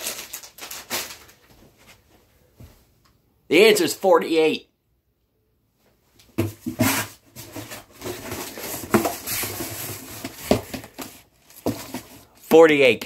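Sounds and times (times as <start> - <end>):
snack bags rustling: 0.0 - 1.6.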